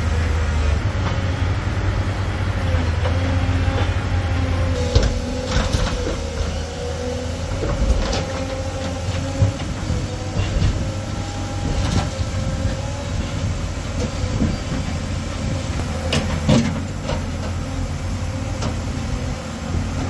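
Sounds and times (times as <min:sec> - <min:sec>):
diesel engines running: 0:00.0 - 0:20.0.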